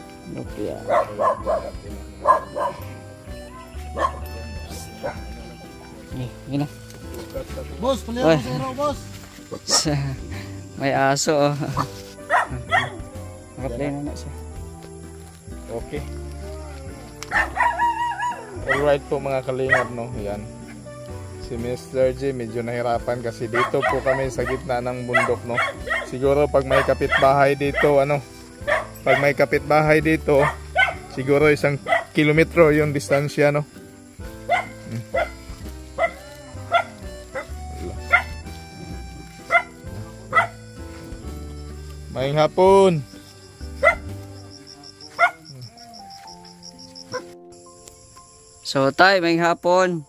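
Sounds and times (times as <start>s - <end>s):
background music: 0.0s - 50.0s
dog barking: 0.8s - 3.0s, 3.9s - 4.3s, 5.0s - 5.3s, 11.7s - 13.0s, 17.3s - 19.0s, 19.6s - 20.0s, 23.5s - 28.0s, 28.6s - 29.3s, 30.4s - 31.1s, 31.8s - 32.2s, 34.4s - 38.4s, 39.5s - 40.6s, 43.8s - 44.1s, 45.2s - 45.4s.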